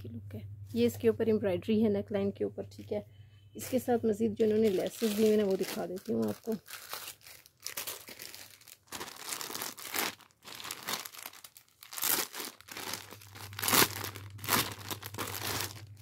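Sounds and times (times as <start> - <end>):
plastic bag crinkling: 4.4 - 16.0.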